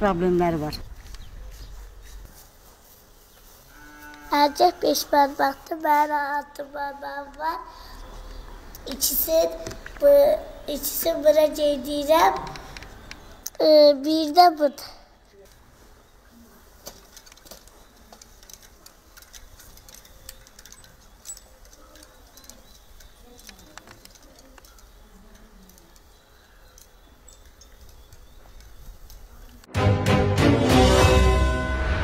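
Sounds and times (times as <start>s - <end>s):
faint clicks: 6.6s - 13.6s, 16.8s - 29.7s.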